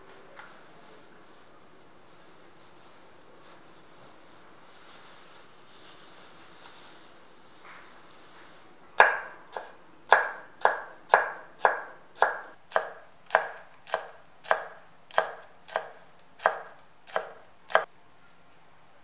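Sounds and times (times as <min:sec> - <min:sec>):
knife chopping on wooden board: 0:09.0 - 0:17.9.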